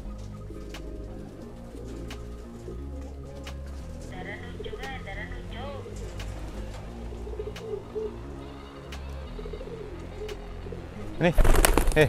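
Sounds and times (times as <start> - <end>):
pigeons cooing: 0.0 - 11.9
person speaking: 4.1 - 5.9.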